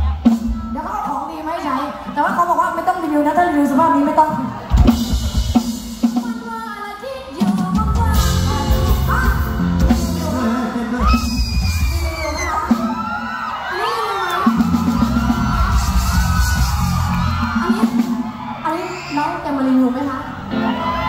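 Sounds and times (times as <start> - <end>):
live band playing: 0.0 - 21.0.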